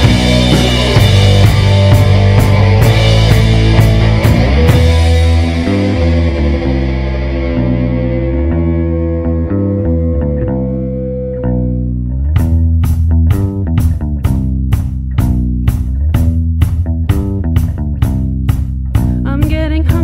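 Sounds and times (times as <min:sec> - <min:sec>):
bass guitar: 0:00.0 - 0:20.0
electric guitar: 0:00.0 - 0:20.0.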